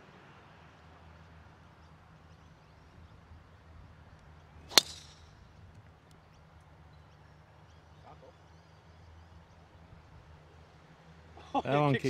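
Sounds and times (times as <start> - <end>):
golf club striking ball: 4.7 - 5.4.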